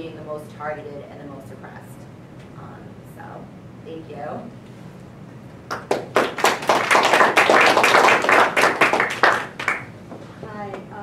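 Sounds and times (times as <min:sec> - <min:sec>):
audience applauding: 0:05.7 - 0:09.9.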